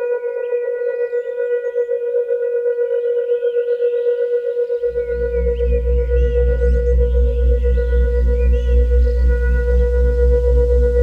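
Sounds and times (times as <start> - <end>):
singing bowl tone: 0.0 - 11.0
faint chirps: 4.8 - 11.0
deep low drone: 4.9 - 11.0.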